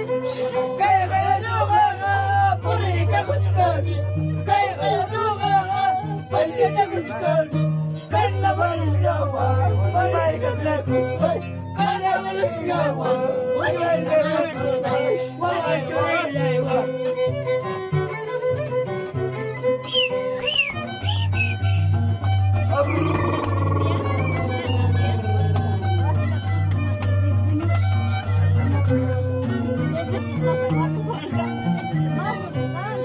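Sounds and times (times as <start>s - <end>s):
violin melody: 0.0s - 33.0s
people's voices and calls: 19.9s - 33.0s
harp plucking bass line: 20.8s - 33.0s.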